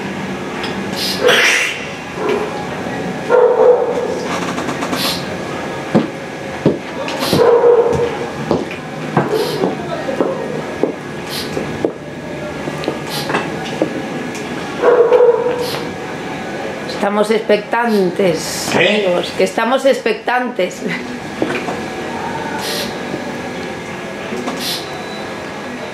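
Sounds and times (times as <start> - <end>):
sharp knocks: 5.9 - 9.4.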